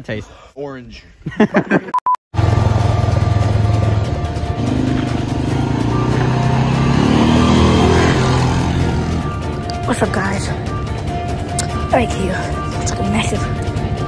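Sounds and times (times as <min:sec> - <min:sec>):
laughter: 0:01.2 - 0:02.0
quad bike engine: 0:02.4 - 0:09.8.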